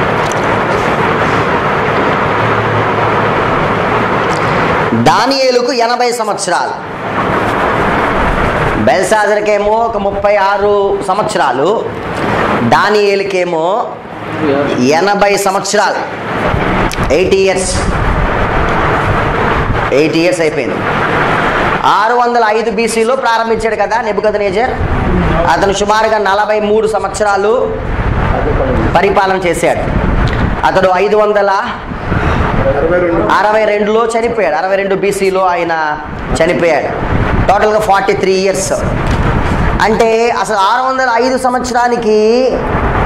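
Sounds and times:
steady rushing noise: 0.0s - 43.0s.

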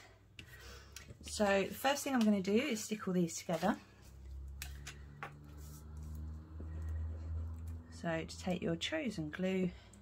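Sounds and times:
hands rubbing card stock: 5.5s - 6.2s.

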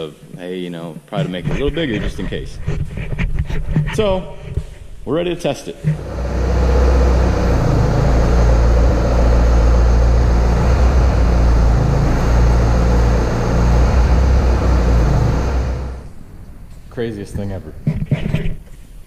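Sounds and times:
diesel engine running under load: 5.9s - 16.7s.

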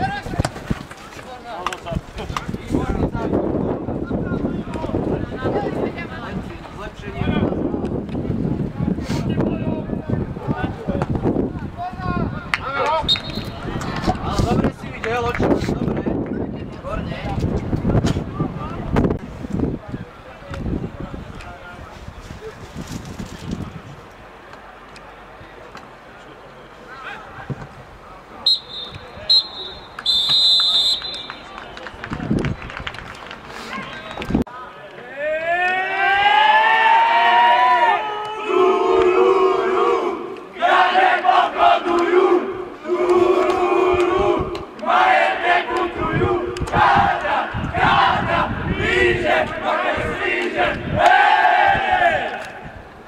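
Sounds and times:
referee's whistle blasts: 13.0s - 13.6s, 28.4s - 31.5s
team shouting together: 35.2s - 52.5s
rhythmic victory chant: 38.4s - 52.4s.

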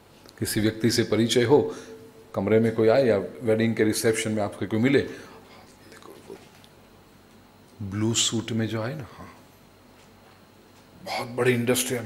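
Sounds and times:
faint room hiss: 0.0s - 12.0s
man speaking: 0.4s - 6.5s, 7.8s - 9.4s, 11.0s - 12.0s.

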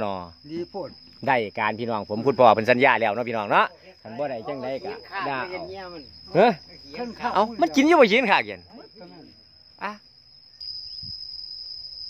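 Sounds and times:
insects buzzing high-pitched: 0.0s - 12.0s.

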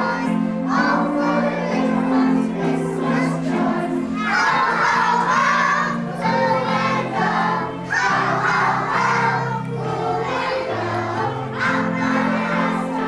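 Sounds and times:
group singing: 0.0s - 13.0s
instrumental accompaniment: 0.0s - 13.0s.

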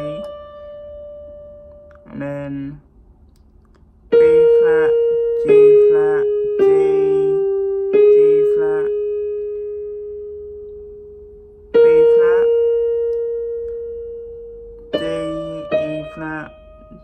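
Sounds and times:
person speaking: 0.0s - 0.4s, 1.8s - 9.2s, 11.7s - 12.8s, 14.9s - 17.0s
electronic keyboard notes: 0.0s - 2.8s, 4.0s - 17.0s.

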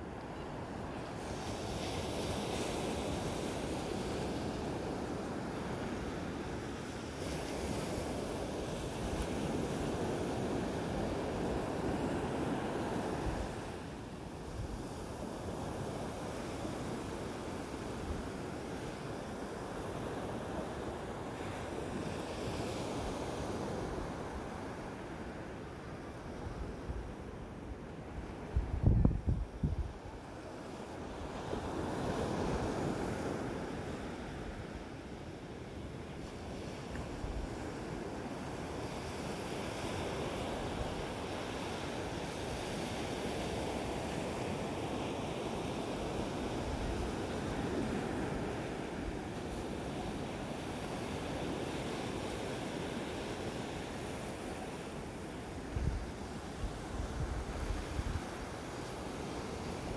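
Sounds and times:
ocean waves breaking on beach: 0.0s - 59.9s
wind buffeting microphone: 28.2s - 30.0s.

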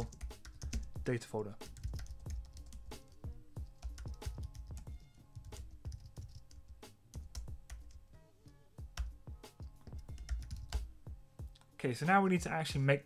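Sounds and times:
typing on computer keyboard: 0.0s - 0.9s, 1.8s - 6.6s, 7.2s - 8.0s, 9.8s - 10.8s.

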